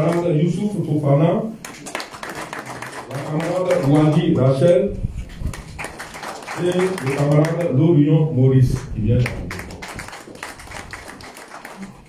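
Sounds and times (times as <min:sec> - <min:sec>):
people clapping: 0:00.0 - 0:00.3, 0:01.6 - 0:04.8, 0:05.4 - 0:07.8, 0:08.7 - 0:12.0.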